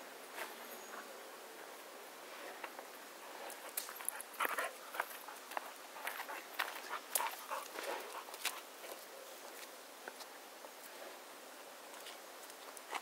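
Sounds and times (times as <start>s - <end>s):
footsteps on pavement: 3.8s - 10.4s.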